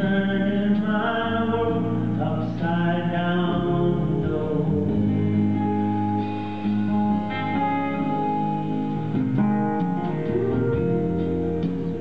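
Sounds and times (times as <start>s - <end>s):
acoustic guitar: 0.0s - 12.0s
live band playing slow ballad: 0.0s - 12.0s.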